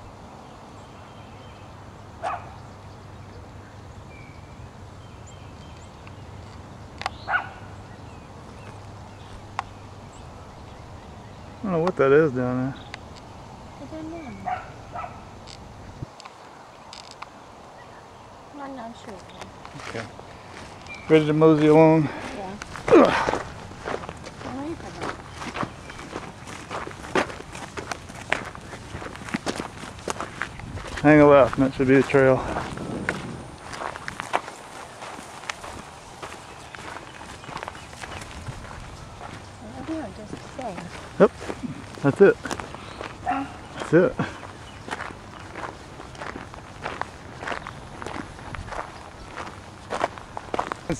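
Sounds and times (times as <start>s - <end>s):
footsteps on sandy trail: 7.1s - 15.2s, 18.9s - 50.9s
wind rumble on microphone: 12.8s - 16.8s, 22.1s - 42.1s, 42.8s - 50.9s.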